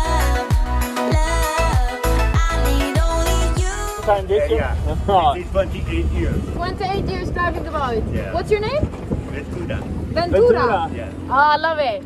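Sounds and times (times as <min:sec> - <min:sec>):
outboard motor running: 0:02.4 - 0:12.0
wind on microphone: 0:04.0 - 0:10.9.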